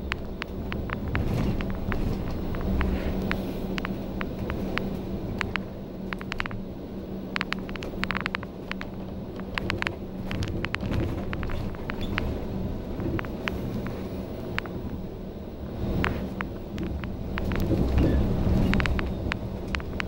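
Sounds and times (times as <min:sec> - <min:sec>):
interior clicks and rattles: 0:00.0 - 0:06.7, 0:07.3 - 0:15.0, 0:15.7 - 0:20.0
bus diesel engine rumbling: 0:00.0 - 0:20.0.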